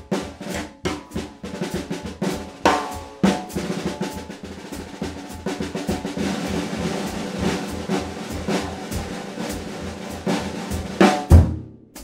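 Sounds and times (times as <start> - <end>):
drum kit playing: 0.0 - 12.0
loud accented drum hits: 0.0 - 12.0.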